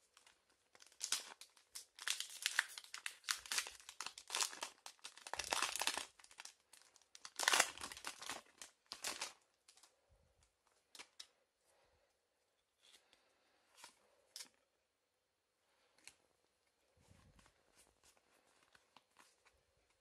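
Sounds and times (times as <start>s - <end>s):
foil wrapper crinkling and tearing: 0.2s - 9.9s.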